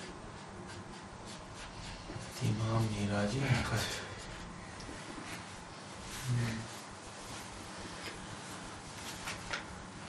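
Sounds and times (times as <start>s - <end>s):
marker pen scratching on whiteboard: 0.0s - 3.1s.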